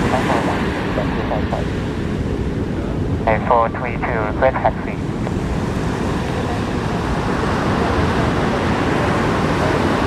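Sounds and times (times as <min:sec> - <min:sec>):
jet airliner rumble: 0:00.0 - 0:10.0
surf: 0:00.0 - 0:10.0
wind: 0:00.0 - 0:10.0.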